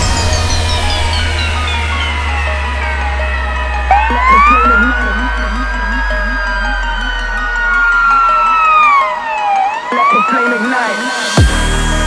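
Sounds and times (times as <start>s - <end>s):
electronic siren wailing: 0.0s - 11.4s
electronic dance music: 0.0s - 12.0s.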